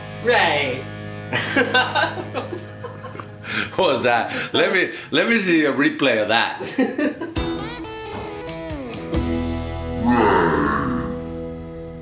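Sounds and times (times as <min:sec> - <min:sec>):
electric guitar music: 0:00.0 - 0:03.6, 0:07.4 - 0:12.0.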